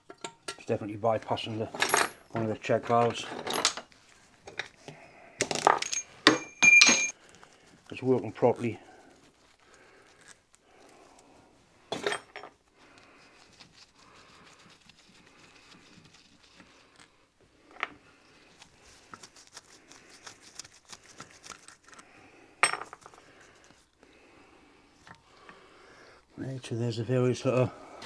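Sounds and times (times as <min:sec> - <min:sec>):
metal tools clinking: 0:01.5 - 0:03.9, 0:05.4 - 0:07.2, 0:22.6 - 0:23.1.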